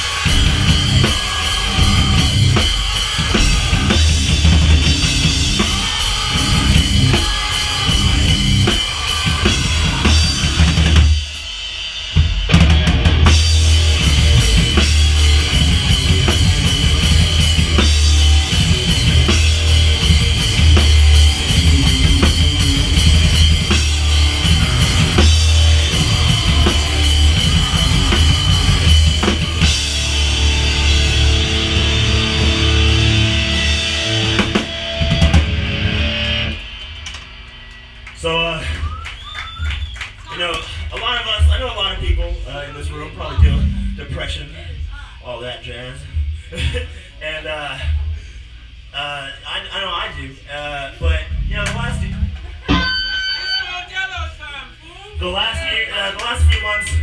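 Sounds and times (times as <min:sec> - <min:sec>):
live rock band playing: 0:00.0 - 0:37.6, 0:51.6 - 0:53.7
heavy kick drum: 0:00.3 - 0:11.2, 0:12.6 - 0:30.4
person's voice: 0:41.4 - 0:44.8
amplifier ringing: 0:52.0 - 0:53.8.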